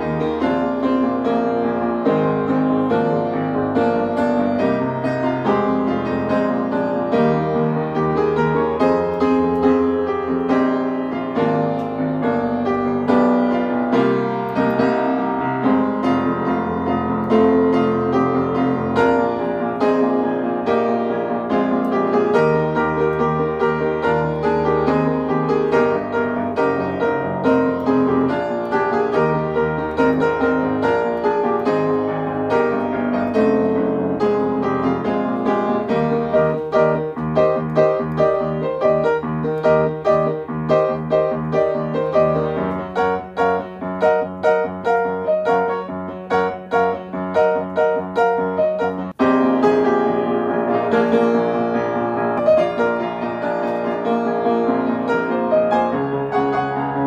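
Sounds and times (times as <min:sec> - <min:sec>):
solo piano playing pop song: 0:00.0 - 0:57.0.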